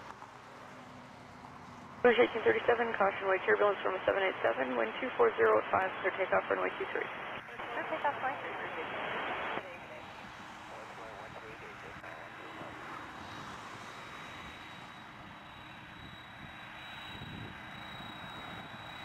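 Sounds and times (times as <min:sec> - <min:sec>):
jet engines at low power: 0:00.0 - 0:19.0
radio call: 0:02.0 - 0:10.0, 0:10.7 - 0:12.8.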